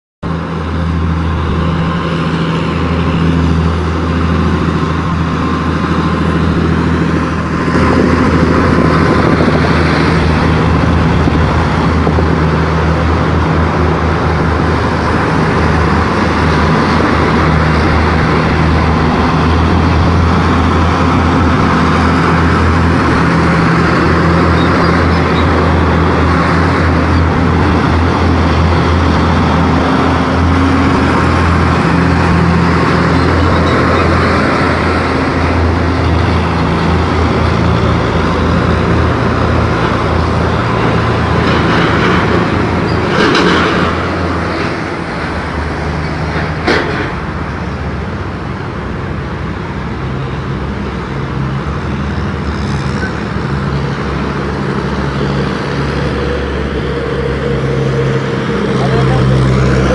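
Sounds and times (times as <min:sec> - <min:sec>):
tank engines droning: 0:00.2 - 0:59.9.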